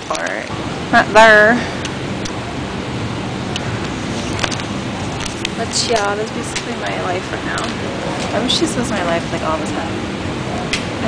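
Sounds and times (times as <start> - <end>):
airport terminal rushing noise: 0.0 - 11.0.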